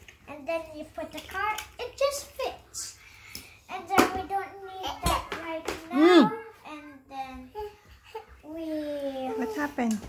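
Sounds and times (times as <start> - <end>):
boy talking: 0.3 - 3.0, 3.7 - 7.7.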